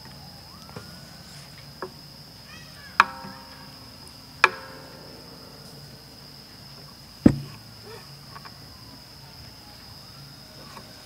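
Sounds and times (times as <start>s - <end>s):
crickets chirping: 0.0s - 11.0s
sharp ringing knock: 3.0s - 7.8s.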